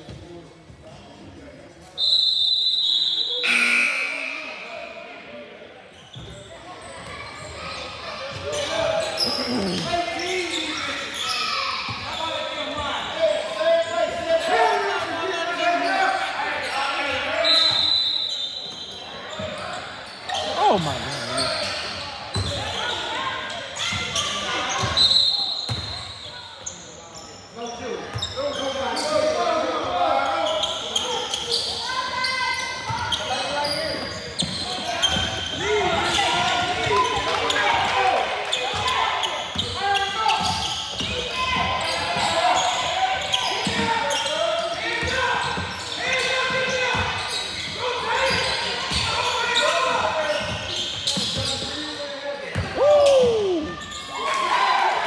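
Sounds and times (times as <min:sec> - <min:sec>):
players and spectators voices: 0:00.0 - 0:55.0
referee's whistle blasts: 0:02.0 - 0:05.0, 0:17.4 - 0:18.9.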